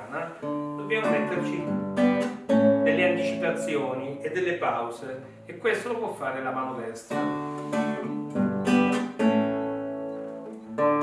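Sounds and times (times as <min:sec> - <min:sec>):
classical guitar strumming: 0:00.0 - 0:11.0.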